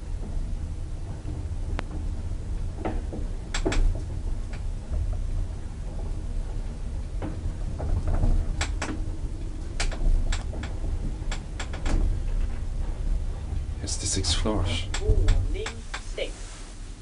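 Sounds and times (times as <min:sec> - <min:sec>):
elevator rumbling in shaft: 0:00.0 - 0:17.0
sharp clicks and rattles: 0:01.1 - 0:06.2, 0:07.1 - 0:16.0.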